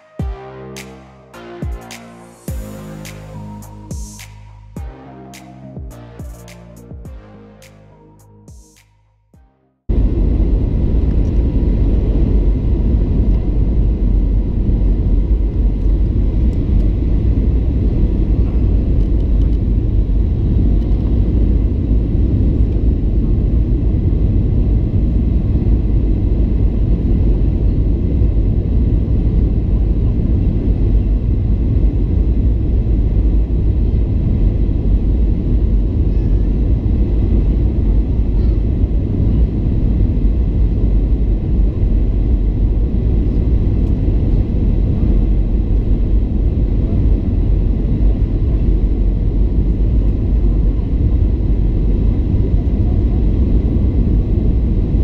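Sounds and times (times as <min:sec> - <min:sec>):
aircraft cabin engine rumble: 0:09.9 - 0:55.0.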